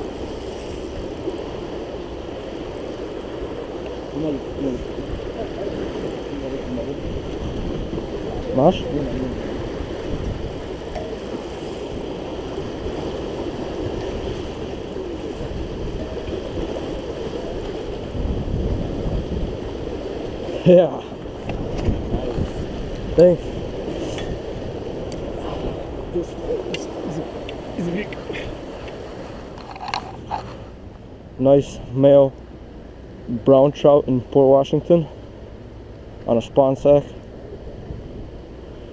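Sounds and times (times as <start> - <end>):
wind buffeting microphone: 0.0 - 32.0, 37.3 - 38.9
rushing churning water: 0.0 - 38.9.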